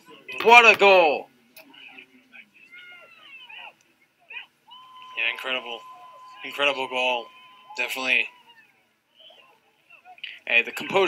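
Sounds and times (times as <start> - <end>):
distant voices: 1.6 - 10.3
people yelling in celebration: 4.7 - 8.8.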